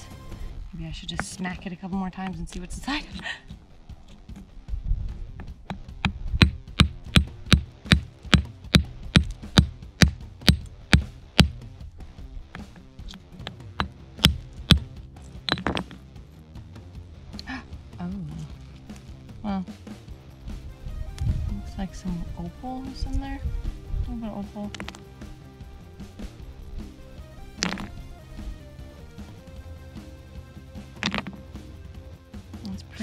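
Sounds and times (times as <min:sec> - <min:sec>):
rock hammer striking rock: 0:05.4 - 0:11.6, 0:12.5 - 0:16.0, 0:24.7 - 0:25.1, 0:27.6 - 0:28.0, 0:30.9 - 0:31.6.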